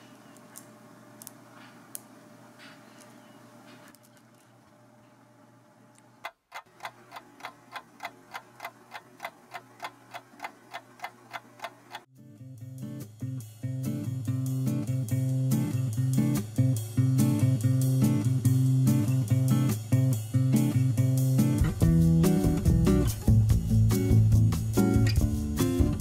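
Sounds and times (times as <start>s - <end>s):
clock ticking: 6.2s - 12.1s
guitar music: 12.2s - 26.0s.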